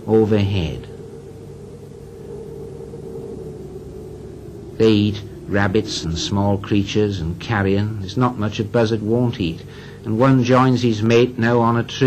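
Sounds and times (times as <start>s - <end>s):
faint constant tone: 0.0s - 12.0s
low hum and hiss: 0.0s - 12.0s.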